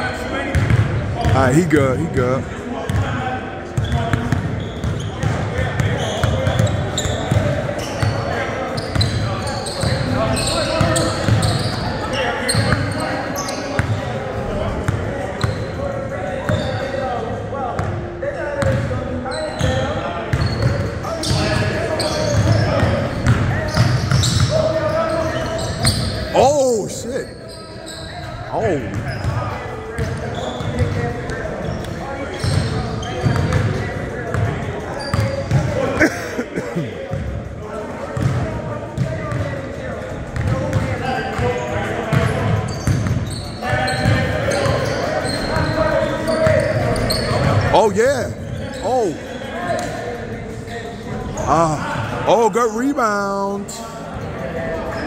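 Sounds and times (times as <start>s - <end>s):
sneakers squeaking: 0.1s - 2.1s, 2.9s - 17.2s, 17.8s - 37.3s, 38.1s - 55.0s.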